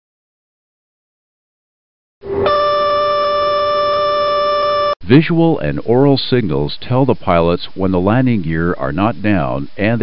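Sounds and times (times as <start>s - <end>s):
warning horn steady tone: 2.2s - 5.0s.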